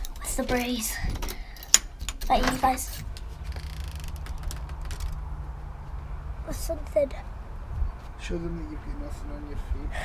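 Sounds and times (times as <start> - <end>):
door handle clicks and hinge creak: 0.0 - 5.3
steady low rumble: 2.6 - 10.0.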